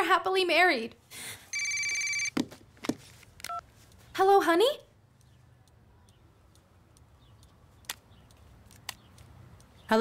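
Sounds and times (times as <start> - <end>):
telephone ringing: 1.5 - 2.4.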